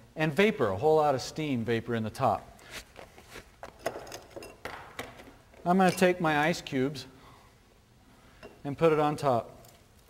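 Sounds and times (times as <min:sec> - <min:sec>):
glassware clinking: 0:03.8 - 0:04.7.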